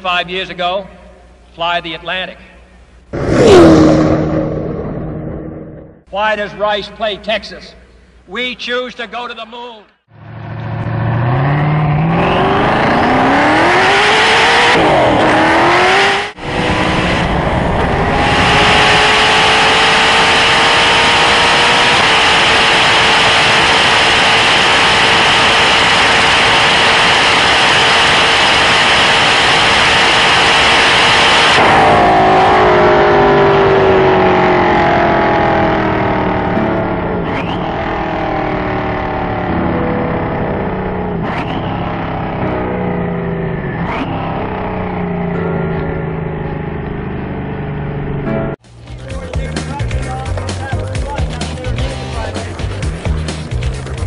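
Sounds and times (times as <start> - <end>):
car engine accelerating hard: 3.1 - 6.1, 10.1 - 48.6
wind rush: 3.2 - 6.0.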